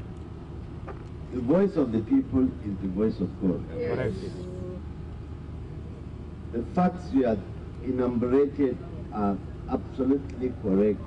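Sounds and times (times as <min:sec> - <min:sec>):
outdoor gathering rumble: 0:00.0 - 0:11.0
man speaking: 0:01.4 - 0:04.3, 0:06.6 - 0:11.0.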